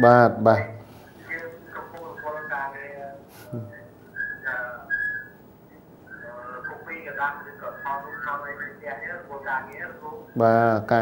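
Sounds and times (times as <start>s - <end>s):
person speaking: 0.0s - 5.2s, 6.1s - 11.0s
short high whistle-like tones: 3.6s - 5.4s.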